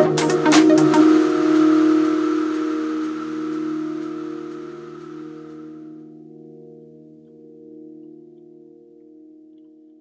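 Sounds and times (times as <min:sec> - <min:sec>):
hissing noise wash: 0:00.0 - 0:06.0
held synth chord: 0:00.0 - 0:09.3.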